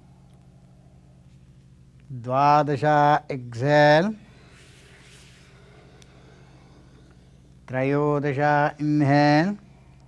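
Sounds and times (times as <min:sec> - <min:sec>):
low electrical hum: 0:00.0 - 0:10.0
recording hiss: 0:00.0 - 0:10.0.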